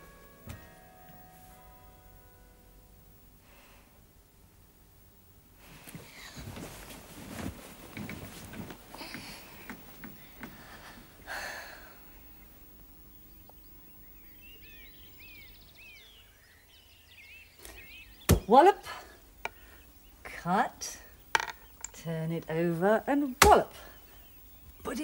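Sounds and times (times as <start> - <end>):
rustling: 5.6 - 11.2
birds chirping: 8.0 - 25.0.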